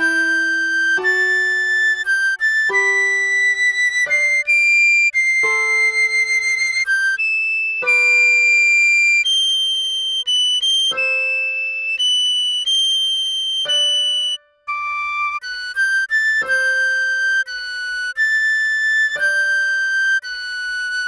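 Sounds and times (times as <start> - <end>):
recorder melody: 0.0 - 21.0.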